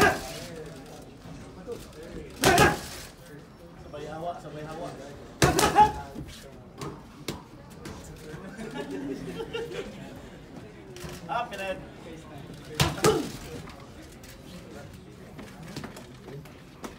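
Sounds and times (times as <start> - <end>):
murmur of gym chatter: 0.0 - 16.9
boxing gloves smacking pads: 2.4 - 2.9, 5.4 - 6.0.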